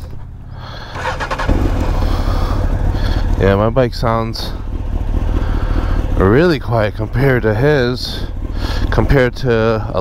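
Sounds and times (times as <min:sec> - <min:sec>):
motorcycle engine idling: 0:00.0 - 0:10.0
starter motor whir: 0:00.8 - 0:02.4.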